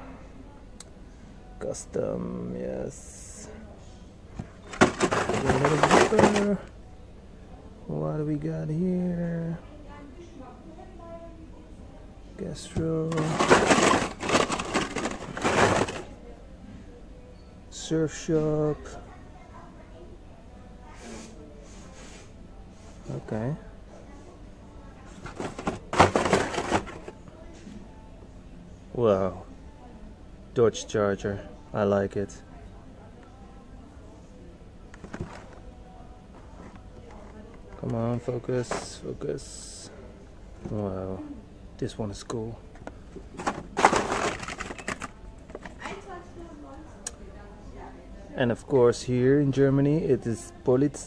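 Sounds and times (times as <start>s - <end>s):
plastic card packs rattling and crinkling: 4.4s - 6.7s, 12.7s - 16.1s, 25.1s - 27.2s, 35.0s - 35.6s, 36.4s - 39.0s, 43.0s - 46.0s.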